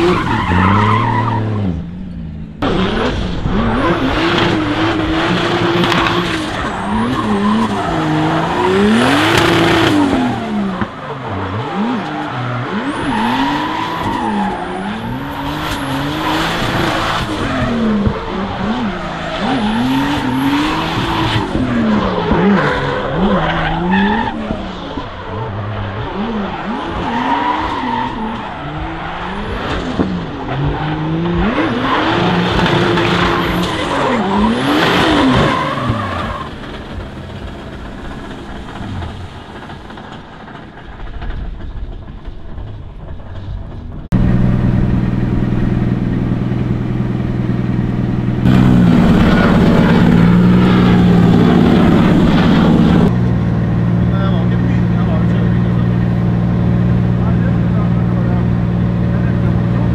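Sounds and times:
car engine revving hard: 0:00.0 - 0:39.5, 0:44.1 - 0:59.9
engine idling: 0:36.1 - 0:59.9.

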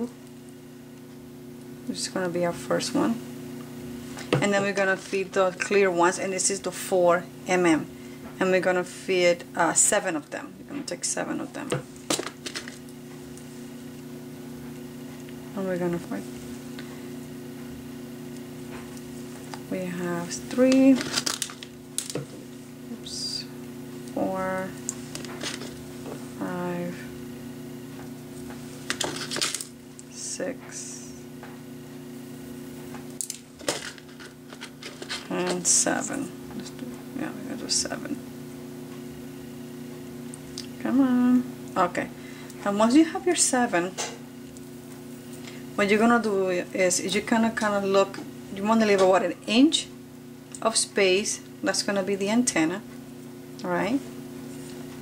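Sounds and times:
steady low hum: 0:00.0 - 0:55.0
woman's voice: 0:01.9 - 0:03.2, 0:04.4 - 0:11.8, 0:15.5 - 0:16.3, 0:19.7 - 0:21.1, 0:22.9 - 0:24.8, 0:26.4 - 0:27.2, 0:30.1 - 0:31.3, 0:35.2 - 0:38.2, 0:40.7 - 0:44.2, 0:45.8 - 0:49.9, 0:50.6 - 0:52.9, 0:53.6 - 0:54.1.

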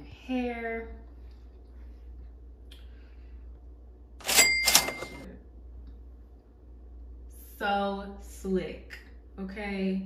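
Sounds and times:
cash register ka-ching: 0:04.2 - 0:05.3.

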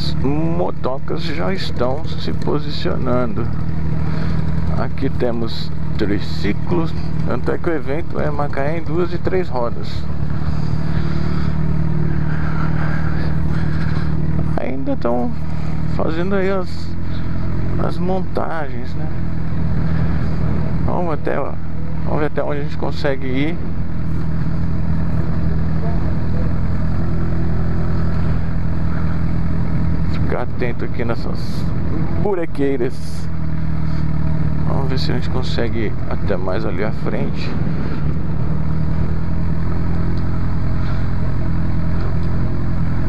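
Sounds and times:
motorcycle engine at low revs: 0:00.0 - 0:43.0.

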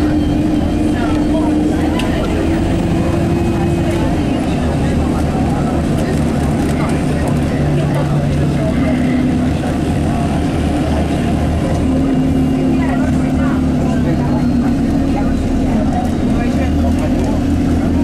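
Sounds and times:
bus engine drone: 0:00.0 - 0:18.0
engine hum: 0:00.0 - 0:18.0.

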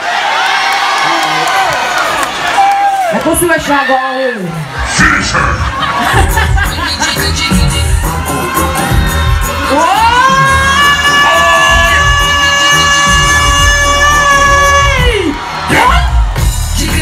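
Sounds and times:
crowd noise: 0:00.0 - 0:17.0
dancehall music with heavy bass: 0:05.0 - 0:17.0.

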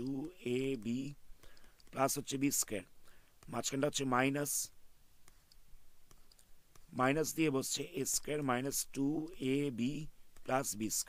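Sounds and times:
stylus tapping on pen tablet: 0:05.2 - 0:07.1.

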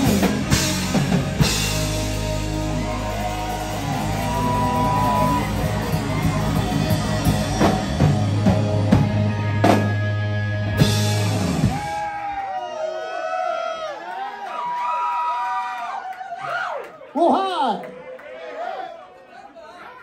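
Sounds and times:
live rock band playing: 0:00.0 - 0:12.3
audience yelling and cheering: 0:00.0 - 0:20.0.

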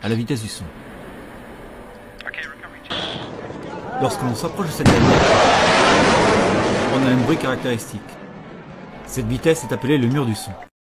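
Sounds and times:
voice: 0:02.2 - 0:05.1, 0:06.8 - 0:08.2, 0:09.1 - 0:10.6
fighter jet roaring overhead: 0:02.9 - 0:10.6.

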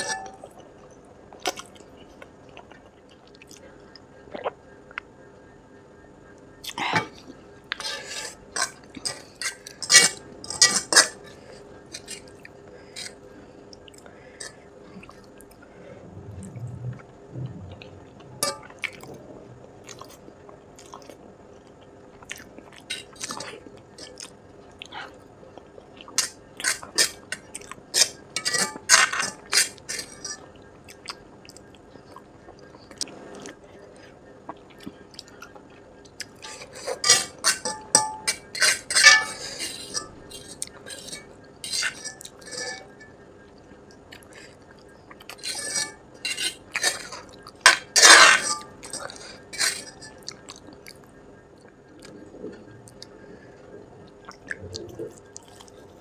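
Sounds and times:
fork scraping metal pan: 0:00.0 - 0:00.4, 0:07.8 - 0:12.3, 0:18.4 - 0:18.6, 0:26.2 - 0:30.5, 0:36.4 - 0:43.1, 0:45.4 - 0:50.2
chewing: 0:00.0 - 0:05.1, 0:16.4 - 0:53.3, 0:54.0 - 0:56.0.

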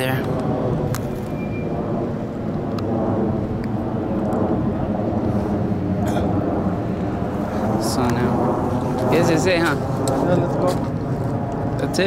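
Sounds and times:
aircraft engine drone: 0:00.0 - 0:12.0.

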